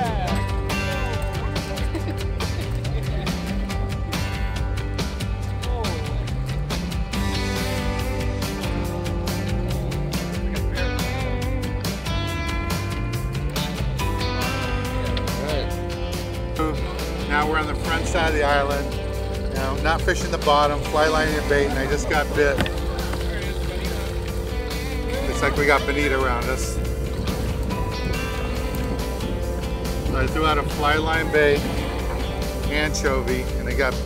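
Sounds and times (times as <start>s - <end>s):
background music with steady beat: 0.0s - 34.0s.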